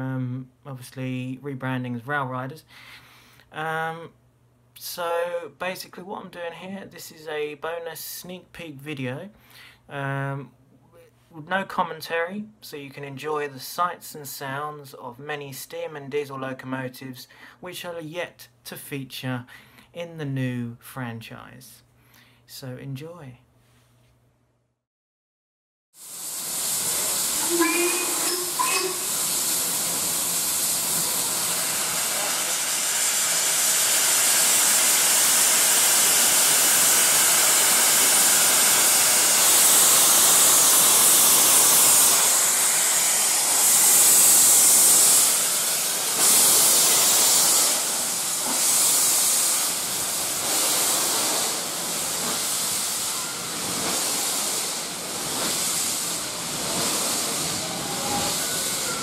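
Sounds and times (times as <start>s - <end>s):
steam locomotive hissing: 26.0s - 59.0s.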